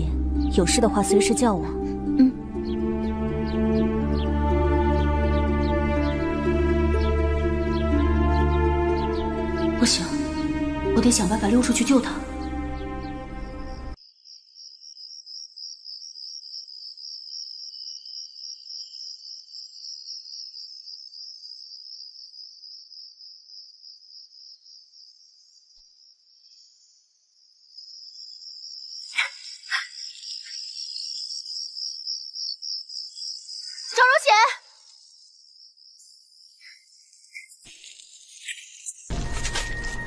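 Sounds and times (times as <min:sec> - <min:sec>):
crickets trilling: 0:12.5 - 0:39.8.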